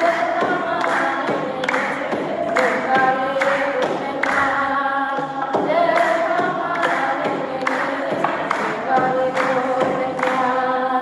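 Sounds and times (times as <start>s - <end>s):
woman singing a hymn into microphone: 0.0s - 11.0s.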